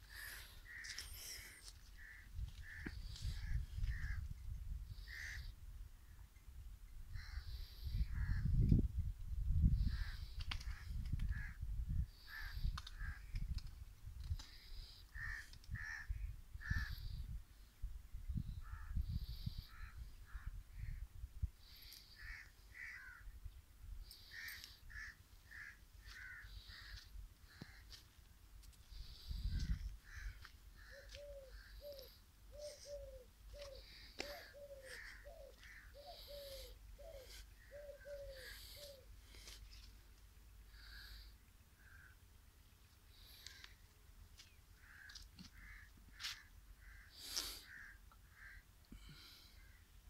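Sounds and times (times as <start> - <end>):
birds calling: 28.9 - 50.0.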